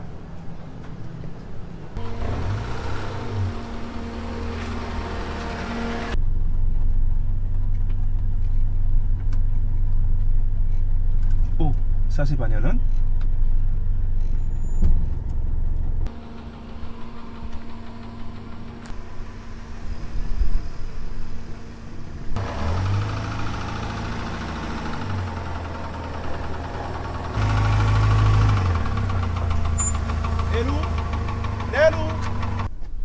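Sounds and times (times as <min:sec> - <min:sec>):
car engine running: 0:02.0 - 0:32.7.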